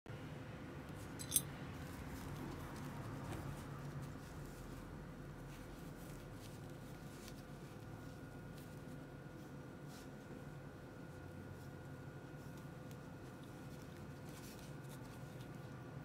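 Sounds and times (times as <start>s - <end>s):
steady low hum: 0.1s - 16.0s
leather belt handling sounds: 0.9s - 16.0s.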